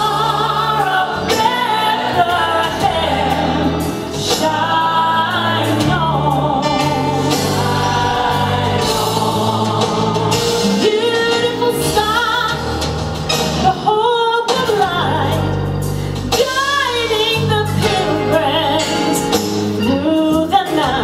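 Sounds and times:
choir singing gospel song: 0.0 - 14.0.

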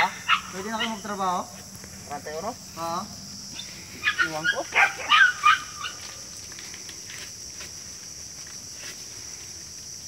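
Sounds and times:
dog yelping: 0.0 - 1.1, 4.0 - 6.0.

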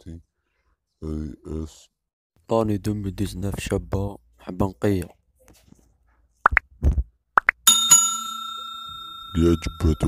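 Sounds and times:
bright bell ding: 7.7 - 10.0.

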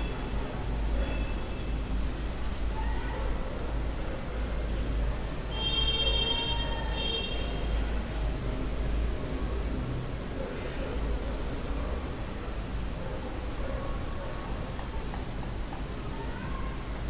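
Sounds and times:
room noise hum and hiss: 0.0 - 17.0.

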